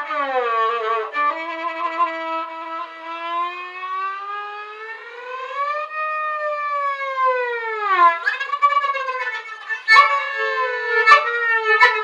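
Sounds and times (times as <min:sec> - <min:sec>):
violin sliding glissando: 0:08.0 - 0:12.0.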